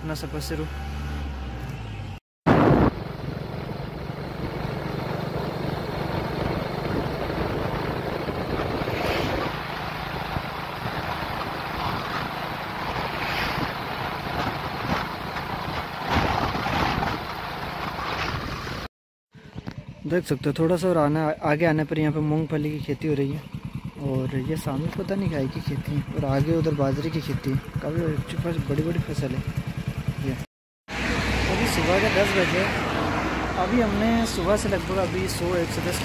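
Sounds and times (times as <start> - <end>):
motorcycle road noise: 0.0 - 36.0.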